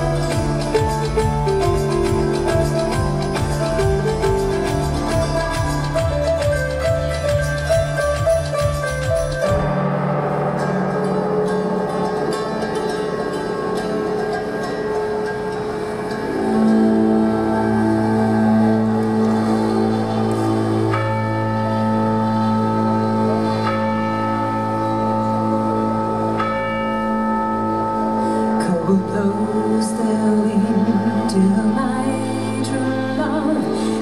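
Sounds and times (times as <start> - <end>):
bell-like notes ringing: 0.0 - 31.7
deep drone: 0.0 - 34.0.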